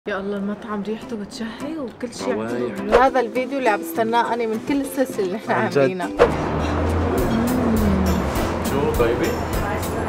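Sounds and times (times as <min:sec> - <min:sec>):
music: 0:00.1 - 0:10.0
car engine drone: 0:06.2 - 0:10.0.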